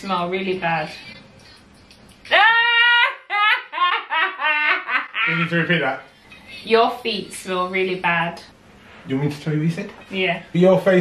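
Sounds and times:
woman laughing loudly: 2.3s - 5.4s.

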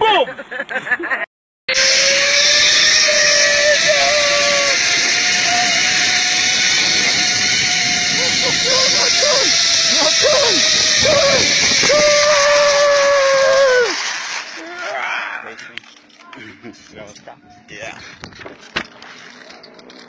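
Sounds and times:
zipline pulleys whining: 1.7s - 15.6s
wind rushing over microphone: 3.6s - 12.7s.

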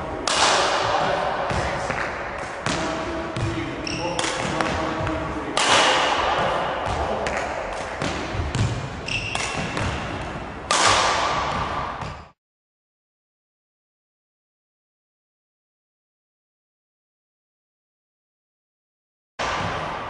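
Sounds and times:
rackets striking shuttlecocks: 0.1s - 12.4s
court shoes squeaking: 0.3s - 12.4s.

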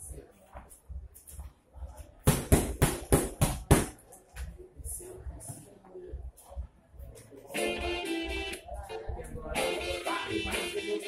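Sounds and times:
boxing gloves punching focus mitts: 2.2s - 4.0s.

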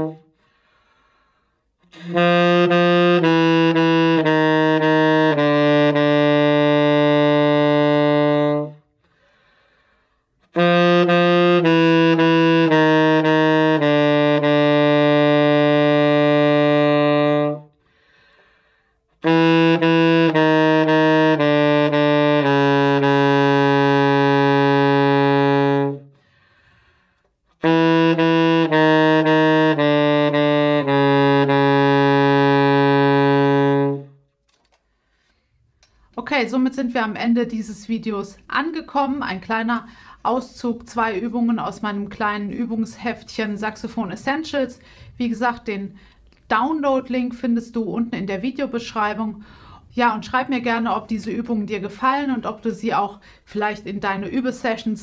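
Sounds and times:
alto saxophone long low note: 0.0s - 0.3s, 1.8s - 8.9s, 10.4s - 17.8s, 19.1s - 26.4s, 27.5s - 34.2s.

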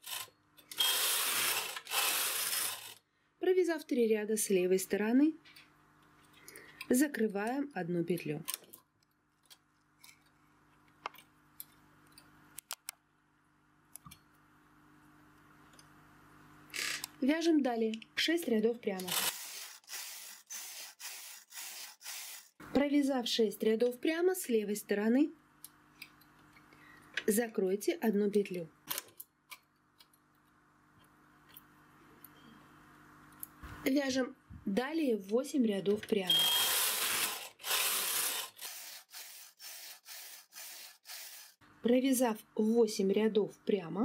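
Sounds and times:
knitting machine carriage hissing: 0.0s - 3.0s, 19.1s - 22.6s, 36.3s - 41.6s
knitting machine carriage rasping: 36.7s - 41.6s.

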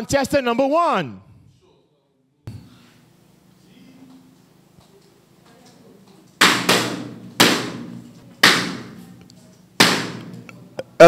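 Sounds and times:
balloons popping: 6.4s - 9.0s, 9.8s - 10.4s.

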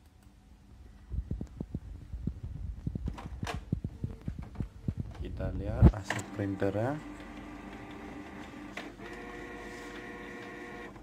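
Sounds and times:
printer motors whining: 5.8s - 11.0s.

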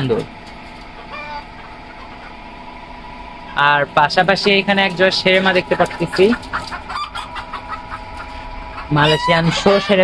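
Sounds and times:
chickens clucking: 0.0s - 10.0s.

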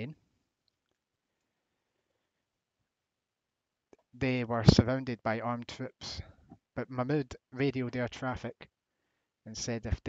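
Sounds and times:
person speaking: 4.2s - 8.6s, 9.5s - 10.0s.

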